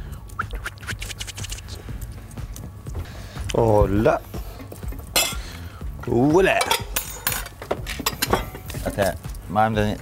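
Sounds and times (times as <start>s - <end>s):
utensils clinking against dishes: 4.6s - 9.4s.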